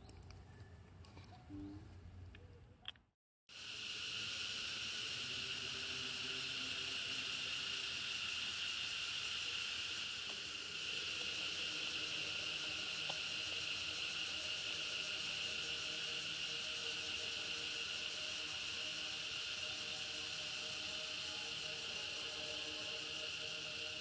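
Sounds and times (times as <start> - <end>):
insect chorus droning: 3.5 - 24.0.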